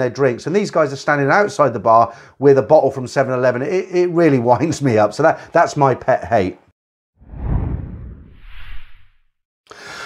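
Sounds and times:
deep whoosh: 7.2 - 9.3.

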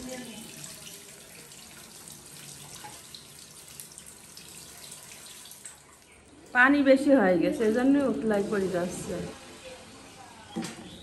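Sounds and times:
water splashing through colander: 0.0 - 11.0.

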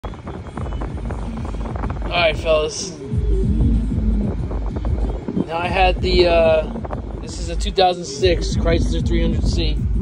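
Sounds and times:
faint music: 0.0 - 10.0
low rumble inside car cabin: 0.0 - 10.0.

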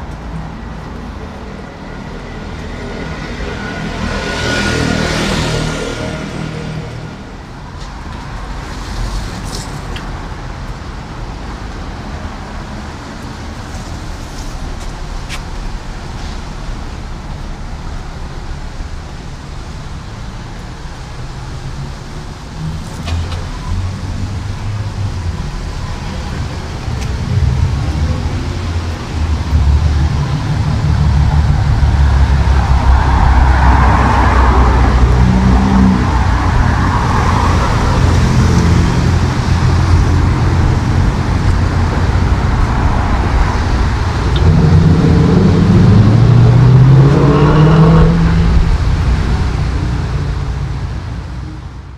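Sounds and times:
city road traffic: 0.0 - 51.9
car engine accelerating: 22.7 - 51.0.

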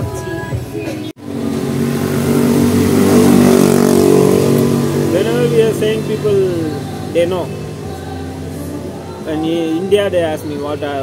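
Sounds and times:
background music: 0.0 - 11.0
vehicle engine running: 1.2 - 11.0.

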